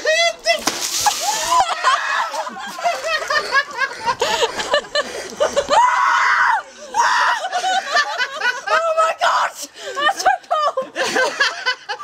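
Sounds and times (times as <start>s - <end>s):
woman screaming: 1.2s - 2.5s, 5.7s - 7.5s.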